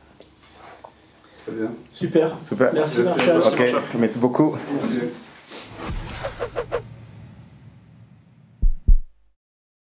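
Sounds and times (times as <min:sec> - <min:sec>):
deep thumps: 0:05.7 - 0:09.3.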